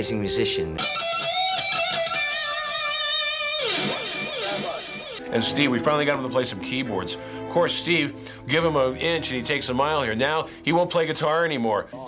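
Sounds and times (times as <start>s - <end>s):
electric guitar sustained note: 0.8s - 6.2s.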